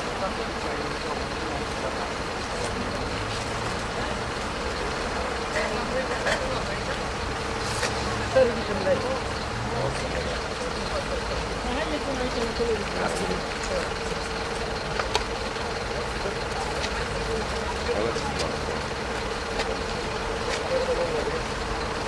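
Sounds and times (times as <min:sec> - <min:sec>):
people talking indistinctly: 0:00.0 - 0:22.0.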